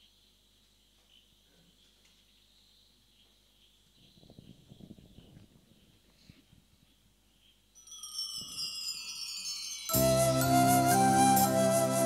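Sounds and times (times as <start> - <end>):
high ringing chime tones: 7.8 - 11.4.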